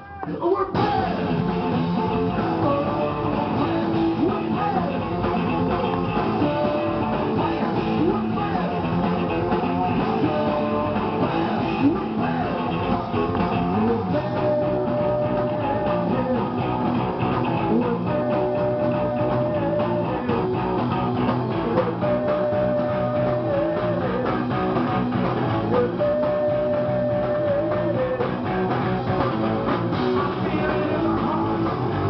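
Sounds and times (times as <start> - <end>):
person singing: 0.0 - 24.7, 25.6 - 28.7, 29.9 - 32.0
bass guitar: 0.0 - 32.0
drums: 0.0 - 32.0
electric guitar: 0.0 - 32.0.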